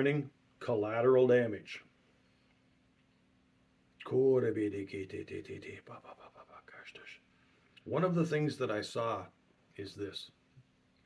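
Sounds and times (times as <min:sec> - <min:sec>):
man speaking softly in prayer: 0:04.0 - 0:07.2, 0:07.9 - 0:10.4.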